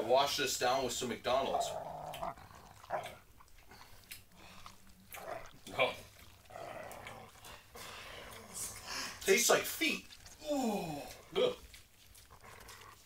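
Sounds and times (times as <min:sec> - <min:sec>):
low throaty sounds: 0:00.0 - 0:13.0
man chewing: 0:01.2 - 0:13.0.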